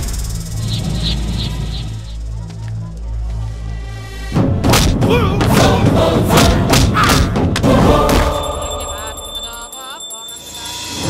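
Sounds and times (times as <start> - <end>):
film score music: 0.0 - 9.8
heavy punch thuds: 4.6 - 8.4.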